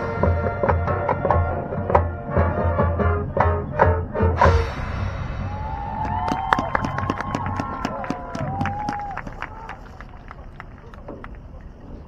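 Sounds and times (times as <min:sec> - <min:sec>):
sliding whoop-like tones: 0:05.2 - 0:09.8.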